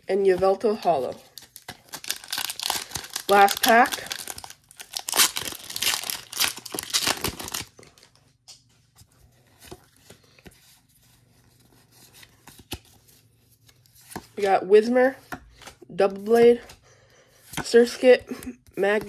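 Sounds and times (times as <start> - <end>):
foil wrapper tearing and crinkling: 1.3 - 8.1.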